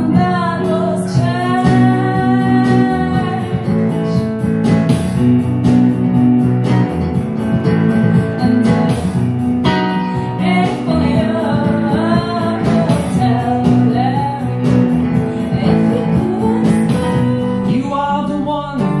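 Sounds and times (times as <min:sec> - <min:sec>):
woman singing: 0:00.0 - 0:04.6, 0:09.6 - 0:19.0
electric guitar: 0:00.0 - 0:19.0.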